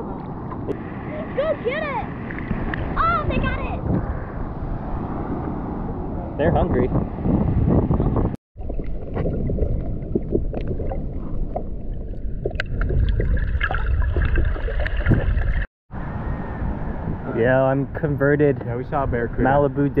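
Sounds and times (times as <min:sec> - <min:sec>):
underwater water noise: 0:00.0 - 0:03.3, 0:08.6 - 0:16.8.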